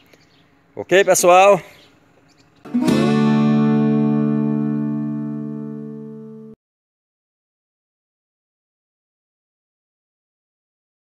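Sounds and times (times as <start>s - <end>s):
strummed guitar chord: 2.7s - 6.6s.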